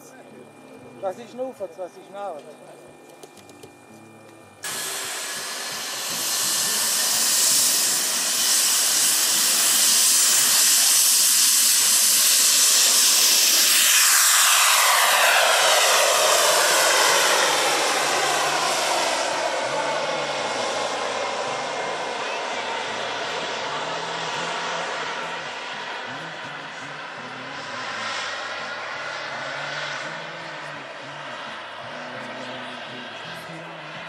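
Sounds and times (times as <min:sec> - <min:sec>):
model jet engines whining: 0:00.0 - 0:34.0.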